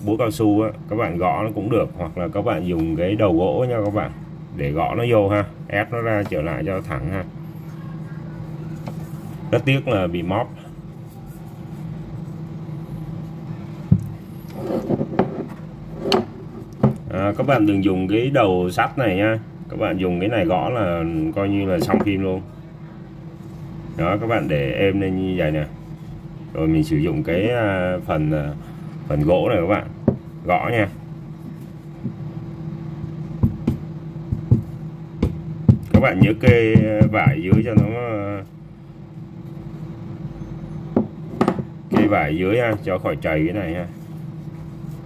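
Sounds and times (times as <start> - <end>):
steady low hum: 0.0 - 45.0
handling noises on wooden desk: 13.9 - 17.1, 21.8 - 22.2, 30.0 - 30.3, 31.4 - 32.2, 40.9 - 42.9.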